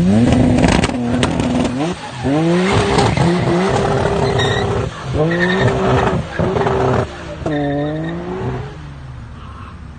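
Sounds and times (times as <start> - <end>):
car engine accelerating hard: 0.0 - 9.0.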